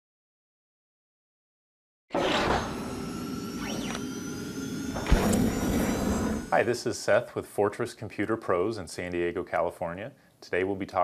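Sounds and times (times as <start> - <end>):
sharp hit: 2.1 - 6.8
sustained electronic tones: 2.3 - 6.8.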